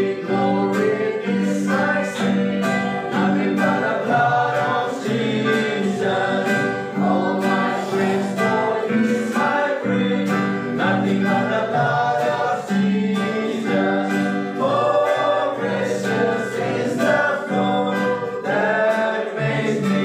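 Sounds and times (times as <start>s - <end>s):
people singing worship song: 0.0s - 20.0s
strummed acoustic guitar: 0.0s - 20.0s.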